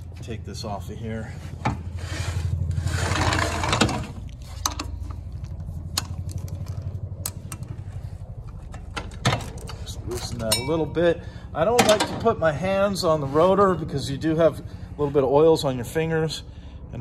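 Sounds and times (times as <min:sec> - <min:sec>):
steady low hum: 0:00.0 - 0:17.0
metal scraping: 0:01.9 - 0:04.9.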